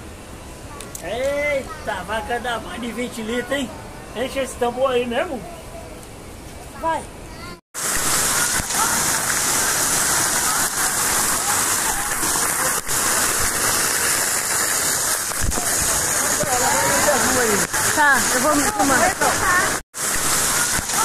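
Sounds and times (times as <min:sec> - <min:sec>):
drops splashing: 0:07.8 - 0:21.0
water jets spraying: 0:07.8 - 0:21.0.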